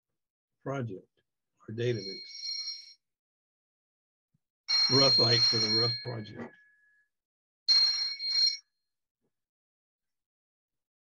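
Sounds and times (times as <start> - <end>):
electronic alert chime: 4.7 - 6.4.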